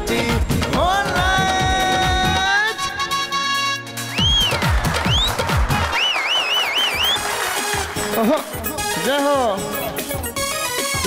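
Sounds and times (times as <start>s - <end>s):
hand-clapping: 4.2s - 8.6s
warbling whistle-like tone: 6.0s - 7.3s.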